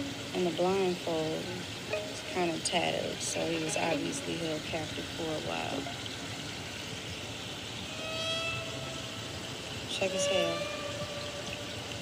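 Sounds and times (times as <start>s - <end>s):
park background noise: 0.0s - 12.0s.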